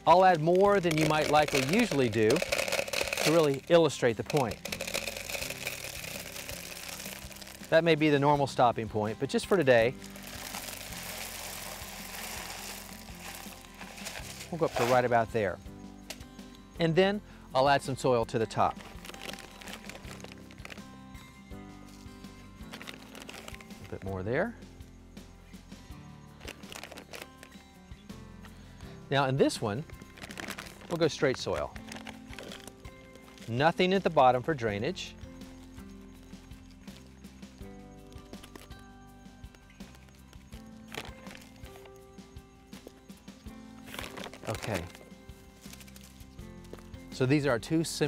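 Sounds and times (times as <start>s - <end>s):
pebbles clicking into plastic container: 0.0s - 7.9s, 9.9s - 15.1s, 18.6s - 20.9s, 22.7s - 24.1s, 26.4s - 27.6s, 29.8s - 33.6s, 38.2s - 38.8s, 39.8s - 41.9s, 43.8s - 46.1s
quiet background music: 0.0s - 48.0s.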